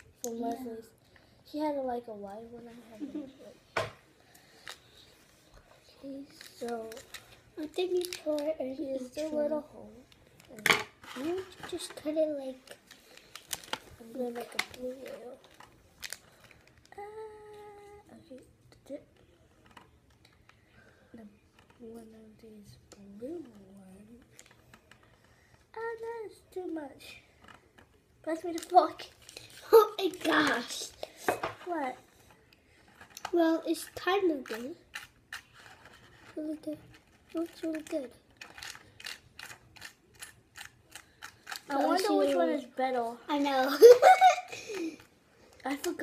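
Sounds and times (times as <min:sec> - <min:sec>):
plastic packet crinkle: 0:06.4 - 0:08.5, 0:12.6 - 0:16.9, 0:36.9 - 0:42.1.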